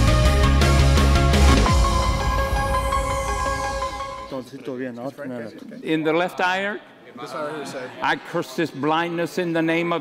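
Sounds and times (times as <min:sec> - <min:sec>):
music: 0:00.0 - 0:04.4.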